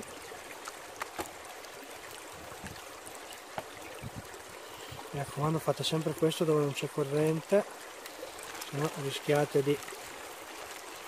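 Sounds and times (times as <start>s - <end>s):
river water running: 0.0s - 11.0s.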